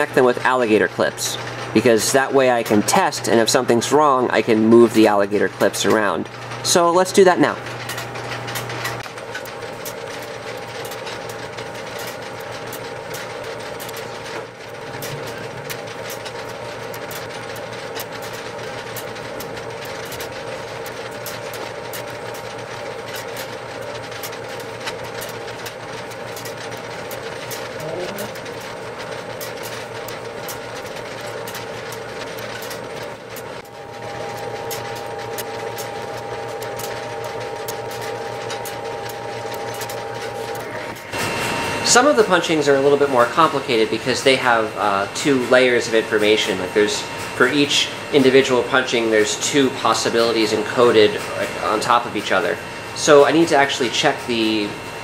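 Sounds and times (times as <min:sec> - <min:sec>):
fast irregular clicking: 0:00.0 - 0:54.8.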